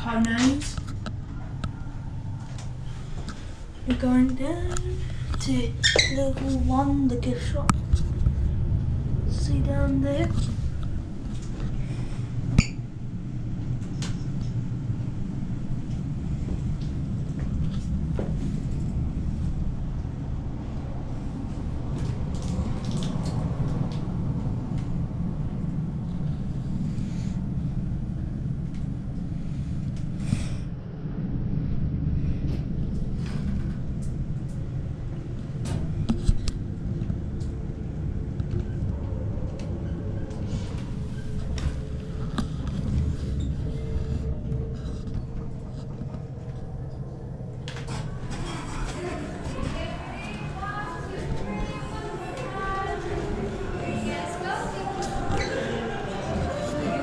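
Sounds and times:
lift car rumbling: 0.0 - 30.2, 30.8 - 57.0
faint steady hum: 0.0 - 57.0.

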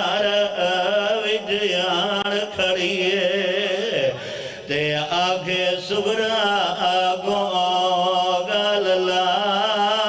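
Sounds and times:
man chanting into microphone: 0.0 - 10.0.

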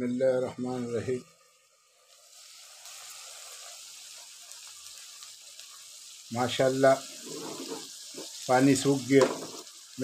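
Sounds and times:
meat sizzling in fat: 0.0 - 10.0.

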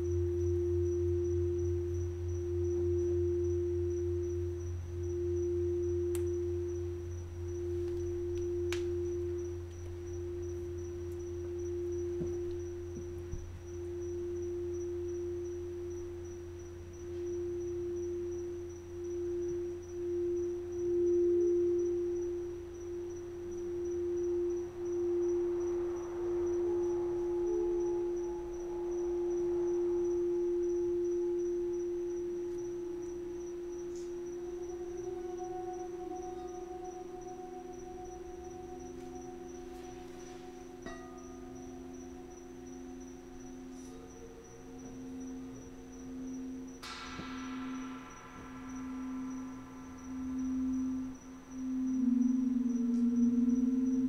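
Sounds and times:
higher bowl tone: 0.0 - 54.0
low hum: 0.0 - 54.0
singing bowl ringing tone: 0.0 - 54.0.

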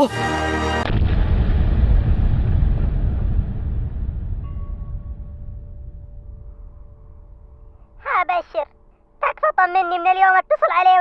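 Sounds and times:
deep rumbling blast: 0.8 - 7.9.

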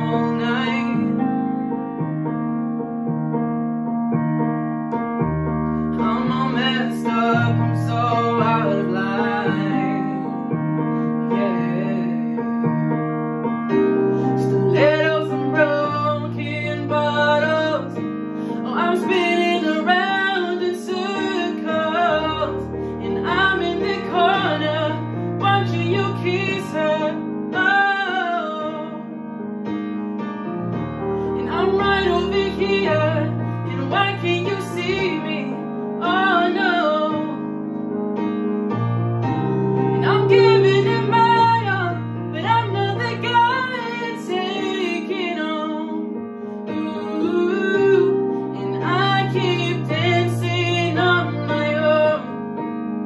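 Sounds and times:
woman singing pop ballad: 0.0 - 1.2, 5.9 - 10.6, 11.2 - 12.6, 14.2 - 29.2, 31.4 - 37.5, 39.9 - 52.4
instrumental accompaniment: 0.0 - 45.3.

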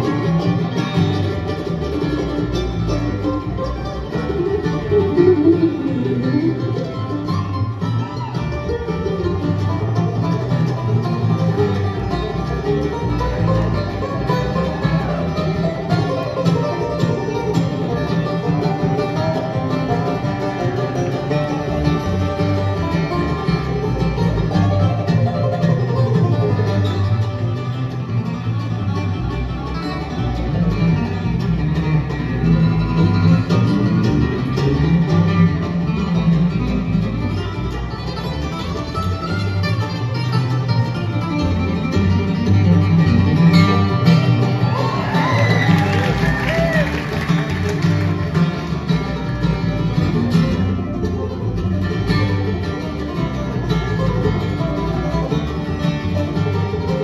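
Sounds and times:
acoustic guitar: 0.0 - 57.0
banjo: 0.0 - 57.0
fiddle: 0.0 - 57.0
mandolin: 0.0 - 57.0
plucked upright bass: 0.0 - 57.0.

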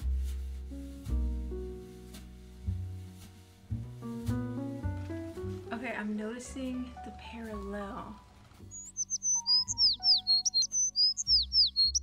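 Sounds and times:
high chirping musical figure: 8.7 - 12.0.

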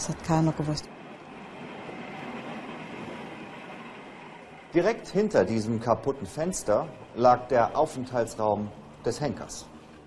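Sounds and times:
street traffic hiss: 0.0 - 10.0.

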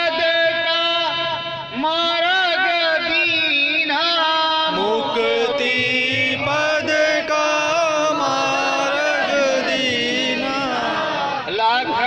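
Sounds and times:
person chanting: 4.7 - 11.5.

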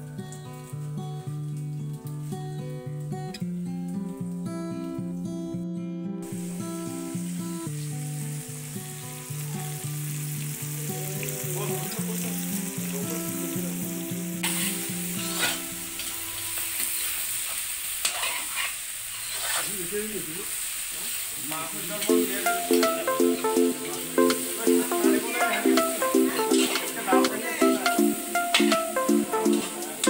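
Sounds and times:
guitar music: 0.0 - 16.9, 22.0 - 30.0
meat sizzling in a wok: 6.2 - 30.0
metal ladle scraping a pan: 14.4 - 16.2, 17.0 - 19.7.

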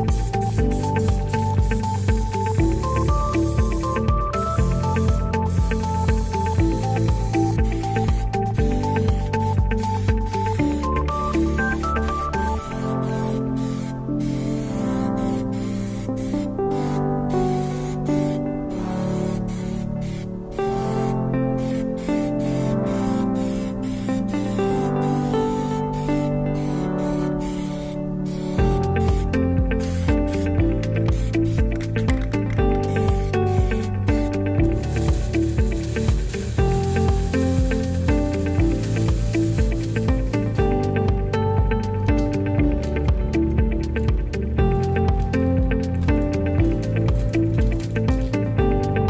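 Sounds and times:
aerosol can spraying in bursts: 0.0 - 41.0
background music with beat: 0.0 - 49.0.

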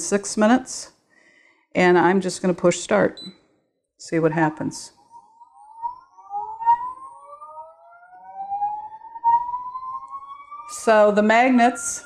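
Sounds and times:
motor whine rising in pitch: 5.1 - 11.0.

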